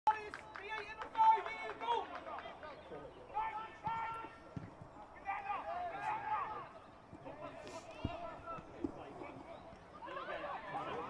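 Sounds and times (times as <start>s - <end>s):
faint people shouting: 0.9s - 11.0s.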